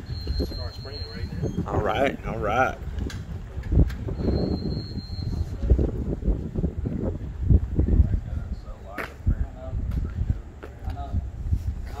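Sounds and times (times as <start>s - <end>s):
men talking: 0.3s - 2.9s, 7.8s - 12.0s.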